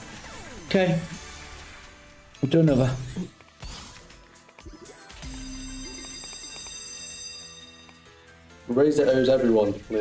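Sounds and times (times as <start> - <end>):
chiming slot game jingle: 4.7 - 9.2.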